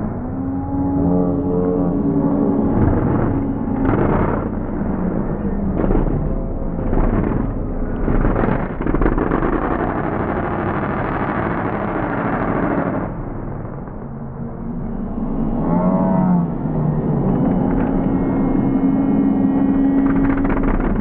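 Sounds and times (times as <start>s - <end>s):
truck engine revving: 1.0s - 13.2s.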